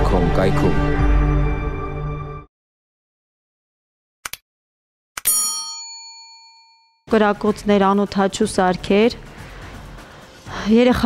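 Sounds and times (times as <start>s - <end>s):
bright bell ding: 5.3s - 7.0s.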